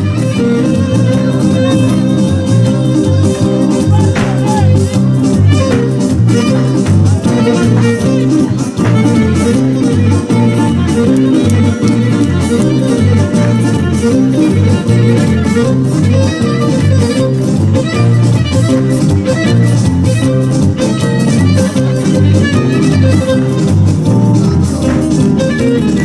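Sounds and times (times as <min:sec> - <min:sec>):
bass guitar: 0:00.0 - 0:26.0
plucked strings: 0:00.3 - 0:26.0.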